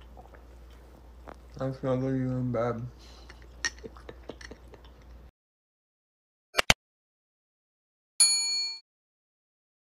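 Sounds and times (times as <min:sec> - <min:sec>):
bright metallic bell ding: 0:08.2 - 0:08.8.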